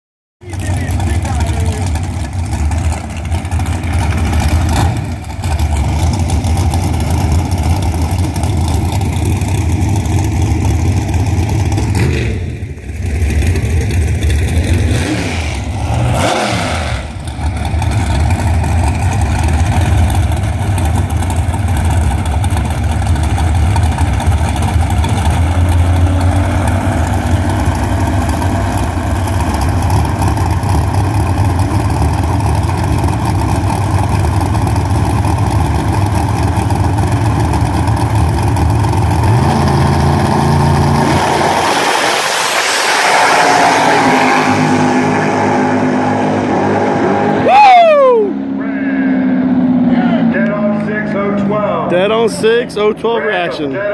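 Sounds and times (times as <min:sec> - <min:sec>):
dragster engine idling loudly: 0:00.4 - 0:15.0, 0:17.0 - 0:41.0
second dragster engine running: 0:00.4 - 0:47.6, 0:48.2 - 0:53.9
engine revving: 0:00.4 - 0:53.0.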